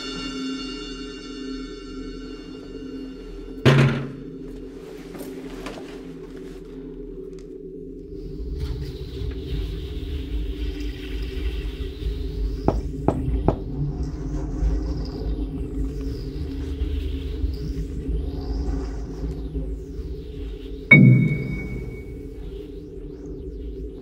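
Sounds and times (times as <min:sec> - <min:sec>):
dark ambient drone: 0:00.0 - 0:24.0
high sweeping swells: 0:20.9 - 0:22.5.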